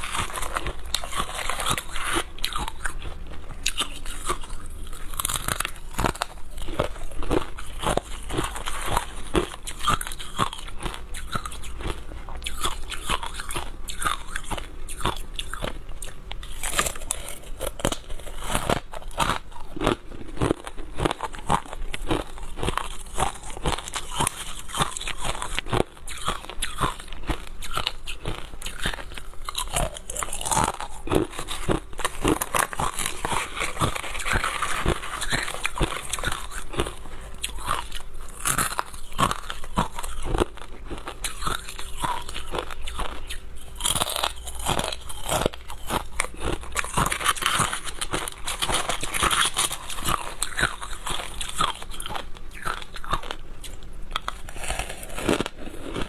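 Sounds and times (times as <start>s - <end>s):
crushed ice being chewed: 0.0s - 56.0s.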